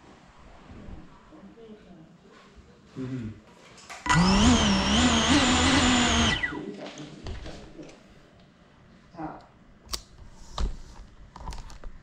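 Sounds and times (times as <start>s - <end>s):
drone motors whining: 4.1s - 6.6s.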